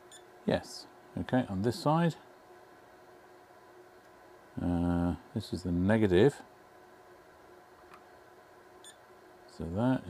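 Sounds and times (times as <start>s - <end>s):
faint high multimeter beep: 0.0s - 0.3s, 8.8s - 9.0s.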